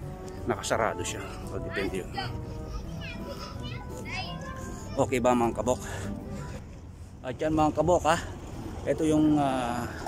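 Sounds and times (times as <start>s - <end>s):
children calling and shouting: 1.1s - 6.9s.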